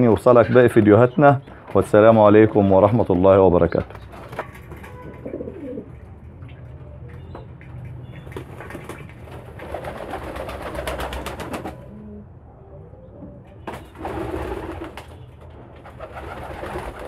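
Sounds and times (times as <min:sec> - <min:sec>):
pigeon cooing: 0:04.8 - 0:06.1, 0:09.8 - 0:13.5
wings flapping in water: 0:08.2 - 0:11.8, 0:16.0 - 0:17.0.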